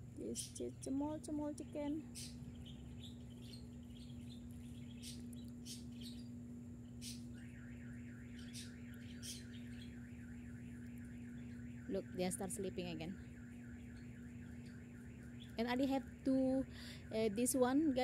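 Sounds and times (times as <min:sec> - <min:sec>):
steady low hum: 0:00.0 - 0:18.0
high bird chirps: 0:01.6 - 0:07.5, 0:08.2 - 0:10.2.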